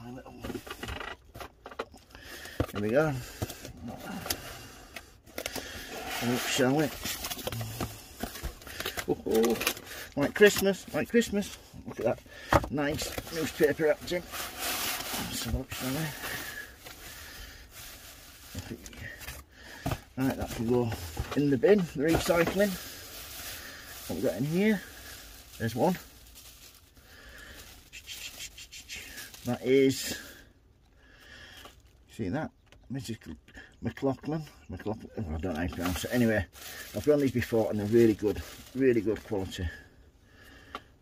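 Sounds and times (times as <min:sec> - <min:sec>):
plastic bag crinkling: 0:02.2 - 0:30.2, 0:35.7 - 0:39.8.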